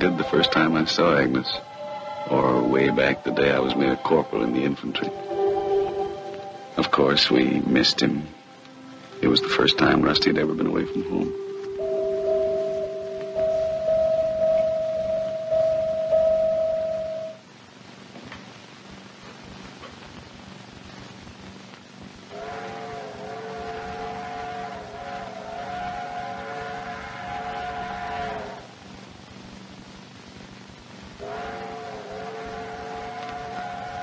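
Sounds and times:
steam locomotive chime whistle: 0.0 - 8.4, 9.1 - 17.4, 22.3 - 28.7, 31.2 - 34.0
held music note: 0.0 - 17.4.

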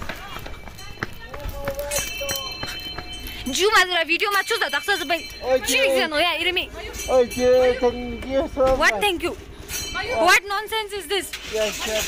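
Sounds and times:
footsteps on pavement: 0.0 - 5.8
people talking: 3.4 - 9.4.

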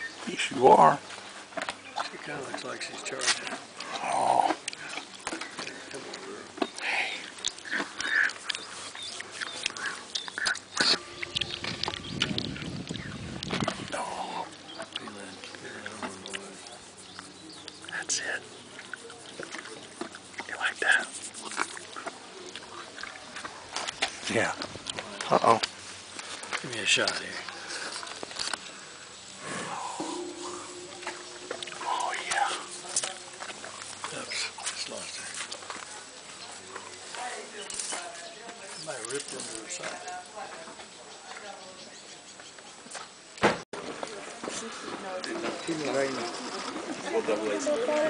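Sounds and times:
people talking indistinctly: 0.0 - 42.3.

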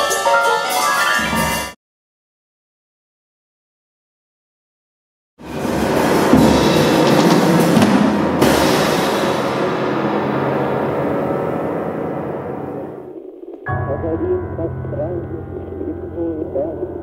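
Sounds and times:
crashing cymbals and drums: 5.4 - 12.1
low piano: 6.0 - 17.0.

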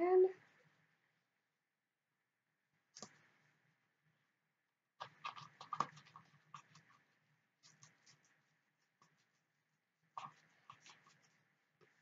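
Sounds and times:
plastic spoon stirring in plastic cup: 5.0 - 12.0.

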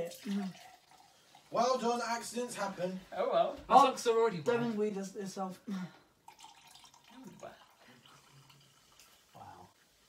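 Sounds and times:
fizzy drink pouring into cup: 0.0 - 1.9, 6.2 - 10.0.

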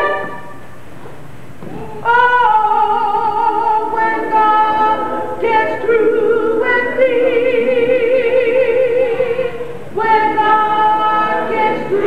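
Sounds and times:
woman singing unaccompanied: 2.0 - 12.0.

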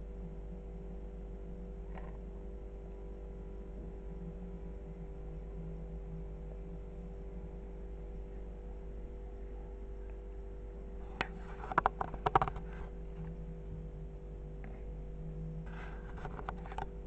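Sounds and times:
faint steady tones: 0.0 - 17.0
steady background hum: 0.0 - 17.0.

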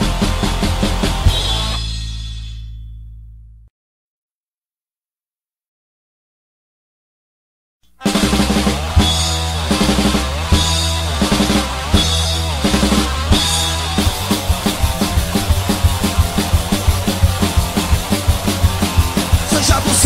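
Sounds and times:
crashing drums: 8.0 - 20.0
held low guitar chords: 8.0 - 20.0.

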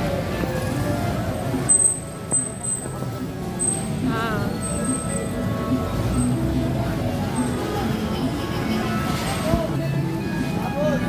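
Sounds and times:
crowd voices: 0.0 - 11.0
road vehicles running: 0.0 - 11.0.

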